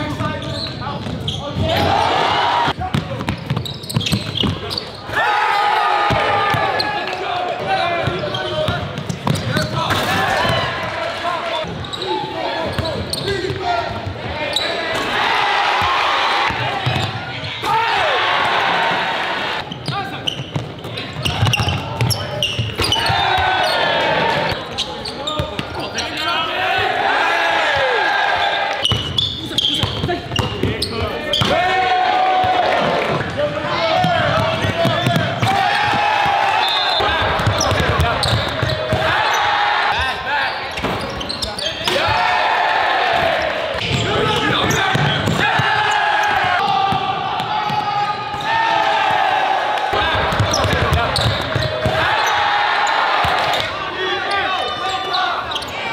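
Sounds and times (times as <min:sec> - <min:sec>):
sneakers squeaking: 0:00.0 - 0:18.6, 0:19.6 - 0:55.9
spectators' voices echoing: 0:00.0 - 0:55.9
basketball bouncing on court: 0:02.7 - 0:04.8, 0:08.0 - 0:09.8, 0:15.8 - 0:17.2, 0:19.8 - 0:23.5, 0:28.8 - 0:31.6, 0:33.9 - 0:39.2, 0:43.8 - 0:48.5, 0:50.0 - 0:52.4.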